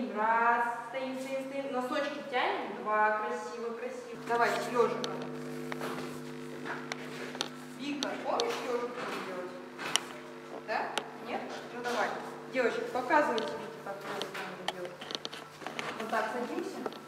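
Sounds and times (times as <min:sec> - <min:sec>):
steady low drone: 0:04.1 - 0:16.0.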